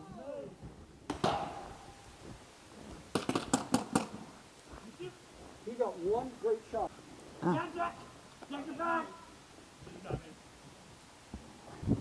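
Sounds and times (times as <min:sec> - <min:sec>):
paintball pistol firing: 0:03.1 - 0:04.1.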